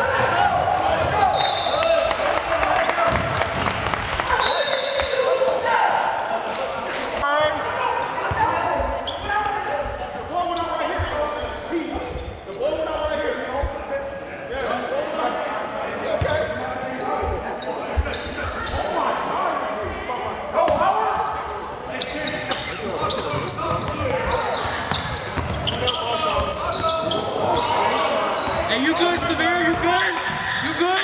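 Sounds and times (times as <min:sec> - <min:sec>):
voices in echoing hall: 0:00.0 - 0:31.0.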